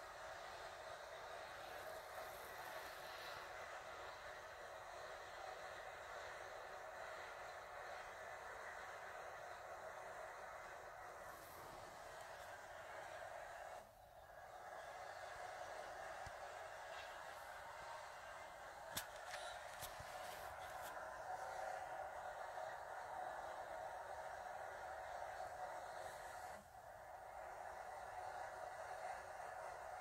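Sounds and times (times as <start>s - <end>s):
faint steady hiss: 0.0s - 30.0s.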